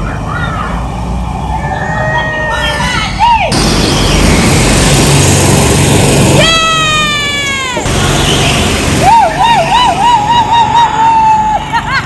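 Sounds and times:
go-kart engines running: 0.0 - 12.0
tyres squealing on concrete: 1.6 - 3.5.

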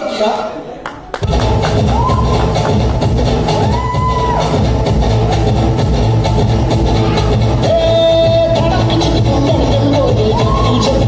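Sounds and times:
dance music with heavy bass: 1.2 - 11.0.

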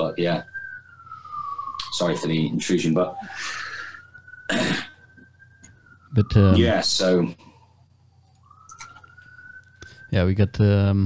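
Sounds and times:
police siren wailing: 0.0 - 11.0
person coughing: 4.5 - 5.0.

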